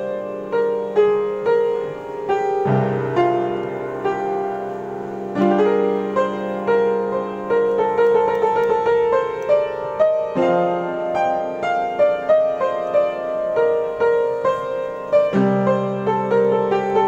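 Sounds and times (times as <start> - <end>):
piano improvisation: 0.0 - 17.0.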